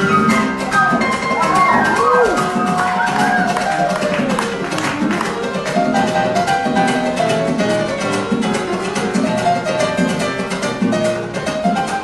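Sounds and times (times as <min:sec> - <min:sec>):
piano playing: 0:00.0 - 0:12.0.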